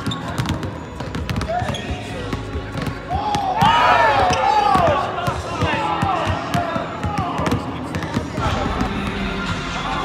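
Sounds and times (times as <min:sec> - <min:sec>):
basketballs bouncing on hardwood: 0:00.0 - 0:09.1.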